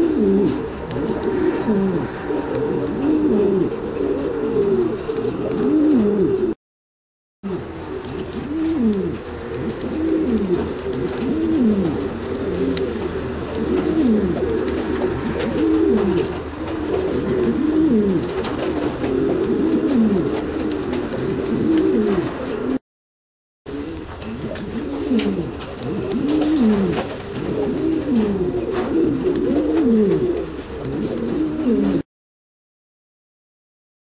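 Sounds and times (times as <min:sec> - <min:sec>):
pigeons cooing: 0:00.0 - 0:06.6, 0:07.5 - 0:22.8, 0:23.7 - 0:32.0.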